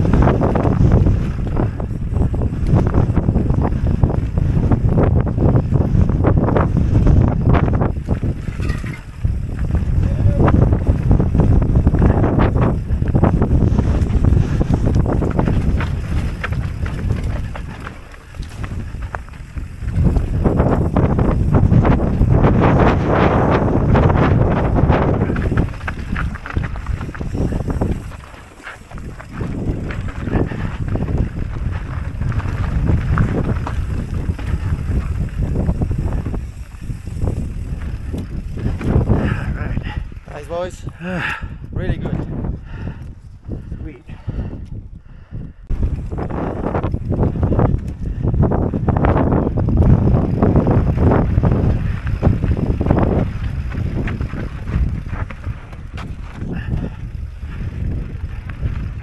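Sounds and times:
bike rattling on bumps: 0.0 - 41.3, 45.7 - 59.0
bike tyres rumbling over rocky dirt: 0.0 - 43.8, 45.7 - 59.0
wind buffeting microphone: 0.0 - 59.0.

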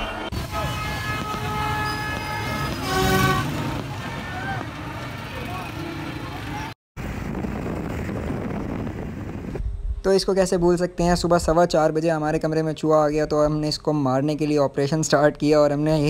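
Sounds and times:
horns tooting long notes: 0.0 - 6.7
busy street noise: 0.0 - 9.6
motorcycle engine and road noise: 0.0 - 9.9.

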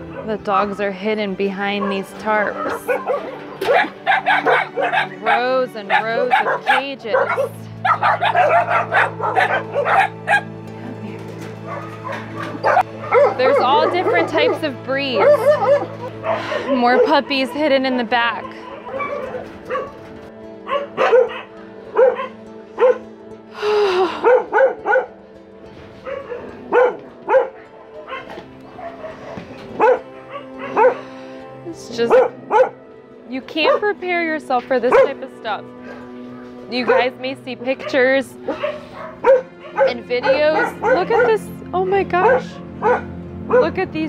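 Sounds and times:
puppies barking and yipping: 0.0 - 23.1, 24.1 - 25.2, 25.8 - 33.0, 33.6 - 44.0
background music: 0.0 - 44.0.

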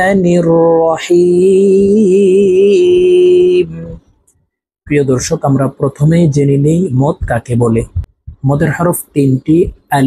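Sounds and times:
man chanting melodically: 0.0 - 4.2, 4.8 - 10.0.

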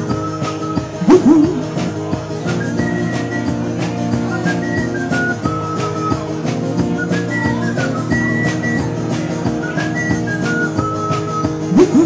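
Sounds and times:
guitar band playing: 0.0 - 12.0
man whistling a melody: 0.0 - 12.0.

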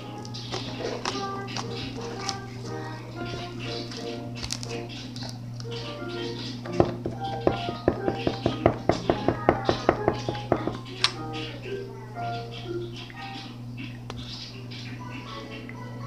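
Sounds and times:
background music: 0.0 - 13.7
steady low hum: 0.0 - 16.0.

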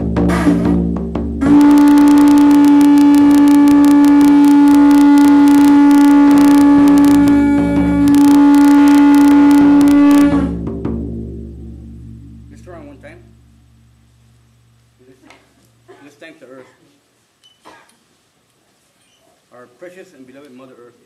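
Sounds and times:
frame drum rapid beats: 0.0 - 5.6, 6.3 - 13.4
conch shell trumpet note: 0.0 - 14.9.

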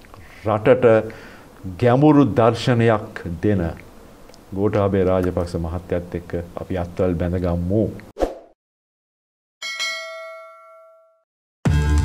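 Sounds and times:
notification bell chime: 9.6 - 11.2.

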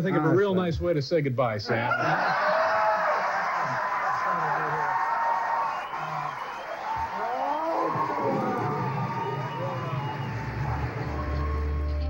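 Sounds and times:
audience applauding and cheering: 1.9 - 12.0
music playing: 7.8 - 12.0.

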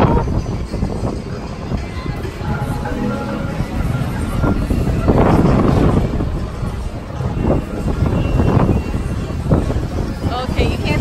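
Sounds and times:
music playing: 0.0 - 10.7
busy fairground noise: 0.0 - 11.0
wind buffeting microphone: 0.0 - 11.0.

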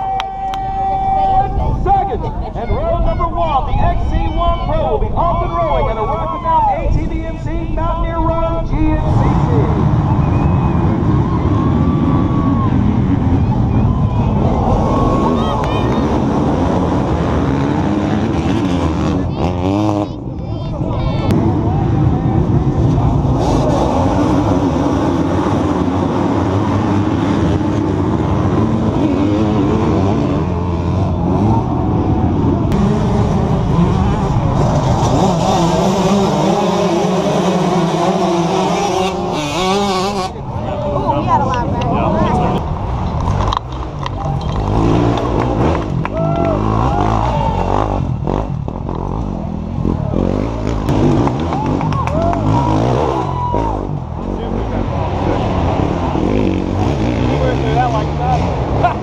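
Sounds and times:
motorcycle engines revving: 0.0 - 59.0
people's voices: 0.0 - 59.0.

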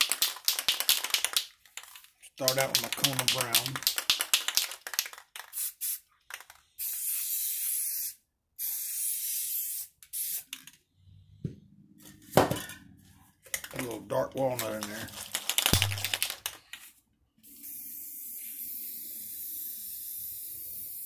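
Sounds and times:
aerosol can rattling: 0.0 - 6.9, 13.5 - 16.8
spray paint hissing: 2.5 - 10.6, 17.4 - 21.0.

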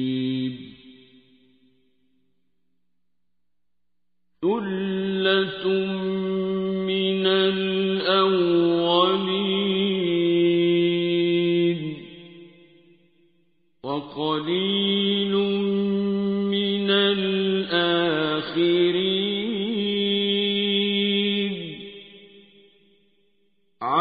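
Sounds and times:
man chanting: 0.0 - 1.4, 4.4 - 12.4, 13.8 - 22.0.

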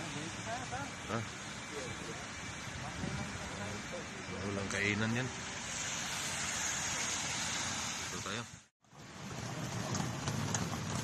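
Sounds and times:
wet street ambience hiss: 0.0 - 10.7.

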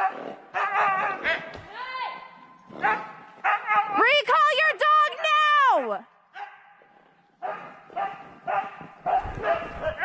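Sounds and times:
dog barking: 2.8 - 3.9, 6.4 - 6.8, 7.4 - 10.0.

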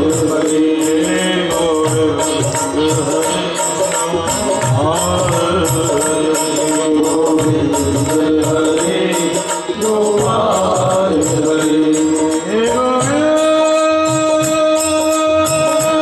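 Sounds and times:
harmonium: 0.0 - 16.0
men singing: 0.0 - 16.0
percussion beat: 0.0 - 16.0.

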